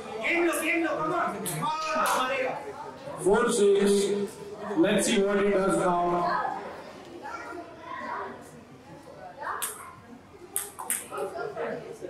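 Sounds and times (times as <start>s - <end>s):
murmur of voices: 0.0s - 12.0s
table tennis ball clicks: 10.6s - 11.1s.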